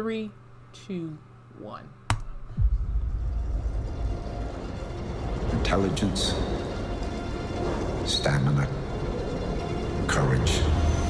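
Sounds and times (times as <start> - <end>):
deep low rumble: 2.6 - 11.0
faint music: 2.6 - 11.0.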